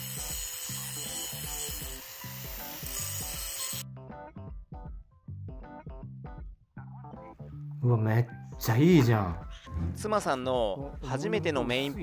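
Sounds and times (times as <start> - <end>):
angle grinder cutting steel: 0.0 - 3.8
background music with a beat: 3.8 - 7.4.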